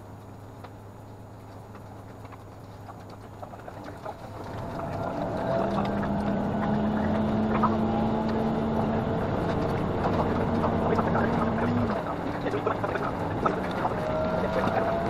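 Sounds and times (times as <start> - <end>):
diesel railcar engine droning: 2.9 - 15.0.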